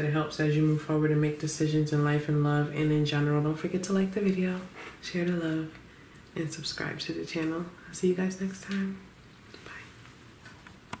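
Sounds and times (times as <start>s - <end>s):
person whispering: 3.9s - 10.0s.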